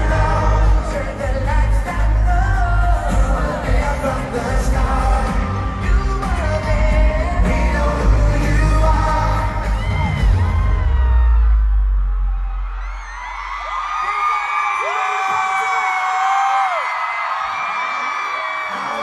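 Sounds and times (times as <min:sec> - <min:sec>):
amplified pop music with heavy bass: 0:00.0 - 0:13.9
crowd screaming and cheering: 0:00.0 - 0:19.0.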